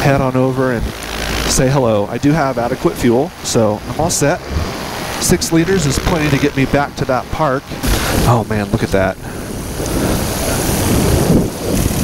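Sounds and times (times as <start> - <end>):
paramotor engine and propeller: 0.0 - 12.0
wind buffeting microphone: 0.0 - 12.0.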